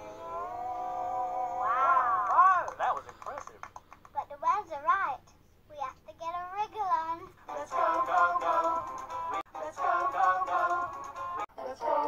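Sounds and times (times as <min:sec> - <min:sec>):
high-pitched puppet voice from television: 0:04.1 - 0:08.2.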